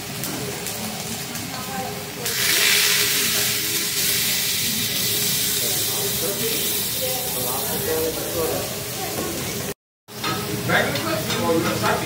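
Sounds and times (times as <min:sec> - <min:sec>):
food sizzling on griddle: 0:00.0 - 0:12.0.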